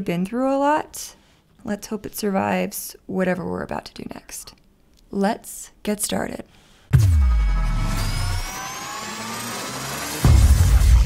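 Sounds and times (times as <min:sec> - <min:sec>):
synthesized rising tones sweep: 0:07.0 - 0:11.0.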